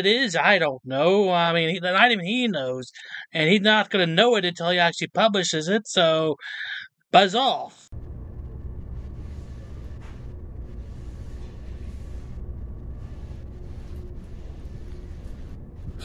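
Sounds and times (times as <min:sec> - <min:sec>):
faint hum: 0:07.9 - 0:16.0
low room rumble: 0:07.9 - 0:16.0.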